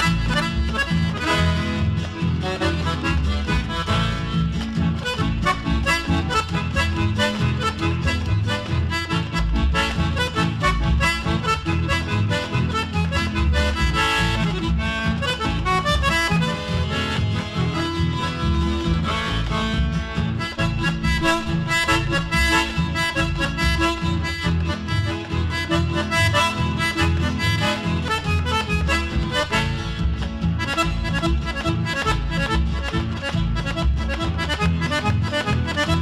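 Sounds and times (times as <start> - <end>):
accordion melody: 0.0 - 36.0
guitar accompaniment: 0.0 - 36.0
rhythmic bass: 0.0 - 36.0.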